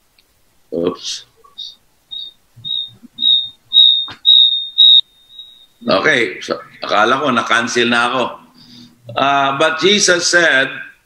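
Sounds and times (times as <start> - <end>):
faint steady tone: 1.4 - 7.5
electronic alarm beeping: 1.6 - 6.9.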